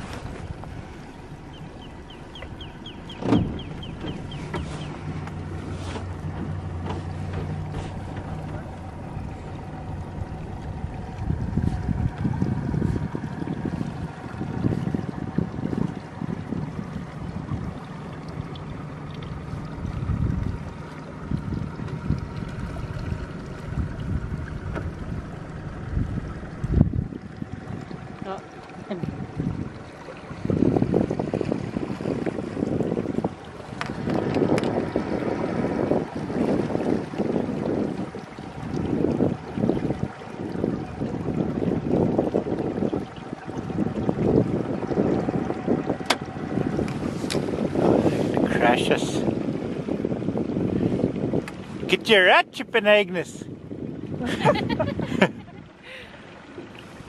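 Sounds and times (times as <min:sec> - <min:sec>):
wind buffeting microphone: 0:00.0 - 0:52.2, 0:53.2 - 0:57.0
outboard motor humming: 0:00.0 - 0:57.0.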